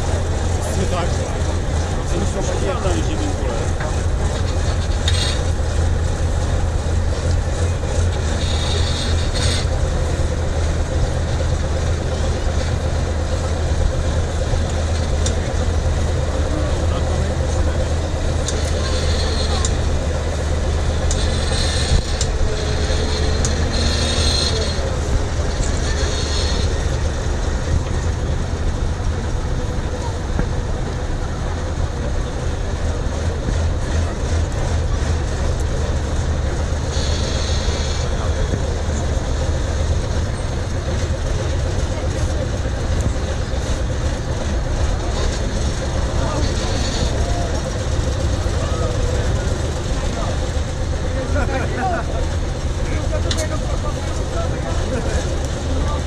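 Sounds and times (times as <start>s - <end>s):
crowd chatter: 0.0s - 56.0s
truck diesel engine running: 0.0s - 56.0s.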